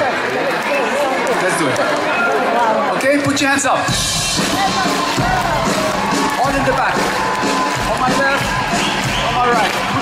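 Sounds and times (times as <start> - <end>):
live band music: 3.8 - 10.0
bass drum beating: 3.9 - 10.0.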